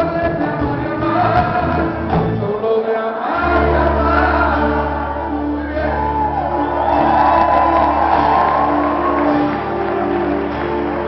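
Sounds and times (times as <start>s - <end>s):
live band playing ballad: 0.0s - 11.0s.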